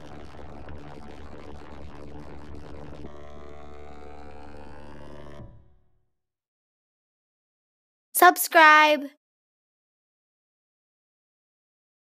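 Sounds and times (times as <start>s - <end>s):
dense electronic tones: 0.0s - 5.7s.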